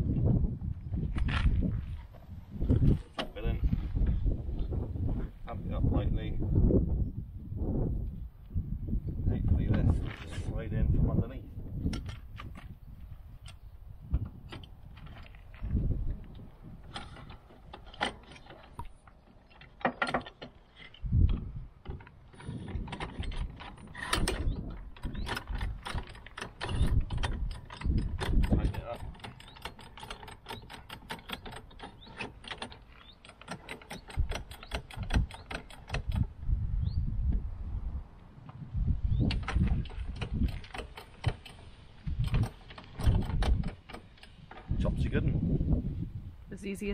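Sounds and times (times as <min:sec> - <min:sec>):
rapid metallic winding clicks: 0:25.0 - 0:36.3.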